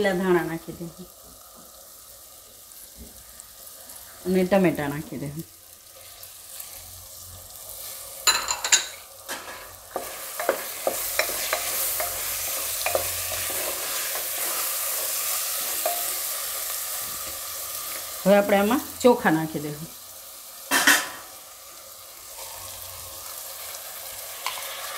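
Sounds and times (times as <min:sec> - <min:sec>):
vegetables sizzling in pot: 0:00.0 - 0:24.9
spatula scraping and stirring: 0:05.8 - 0:18.1.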